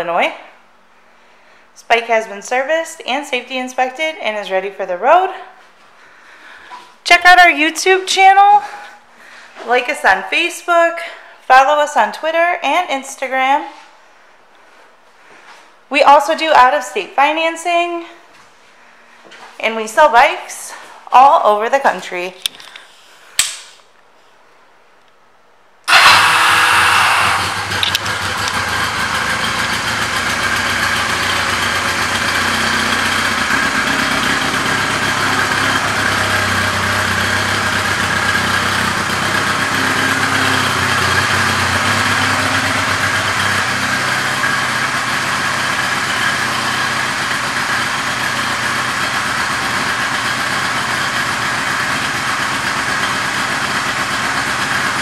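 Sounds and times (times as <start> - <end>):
motorcycle engine starting and idling: 25.9 - 55.0.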